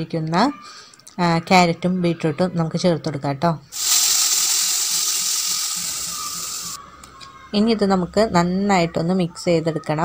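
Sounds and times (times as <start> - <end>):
vegetables sizzling in hot pan: 3.8 - 6.8.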